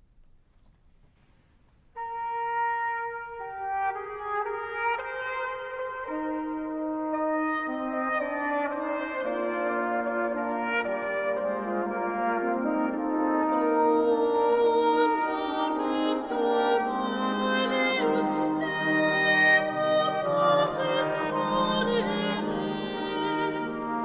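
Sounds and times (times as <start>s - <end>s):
polyphonic wind instrument piece: 1.9s - 24.0s.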